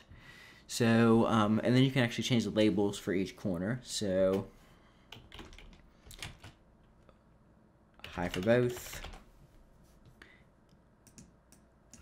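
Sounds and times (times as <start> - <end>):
typing on computer keyboard: 5.1 - 6.6, 8.0 - 9.2.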